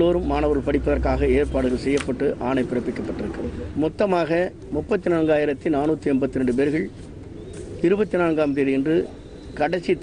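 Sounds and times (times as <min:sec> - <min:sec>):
man speaking into microphones: 0:00.0 - 0:07.0, 0:07.8 - 0:10.0.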